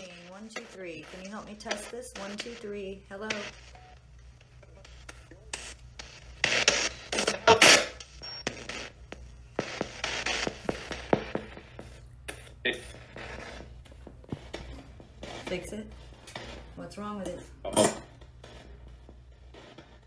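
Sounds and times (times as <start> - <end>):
choppy radio static bursts: 0.0 - 20.0
clipped broadcast fragments: 0.0 - 20.0.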